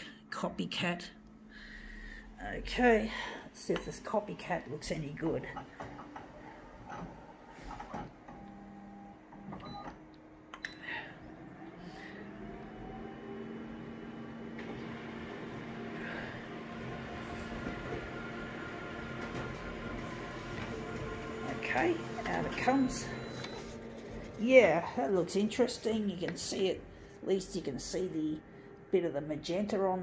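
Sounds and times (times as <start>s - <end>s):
photocopier printing whir and hum: 3.4s - 27.2s
photocopier clicks and whirs: 11.7s - 24.4s.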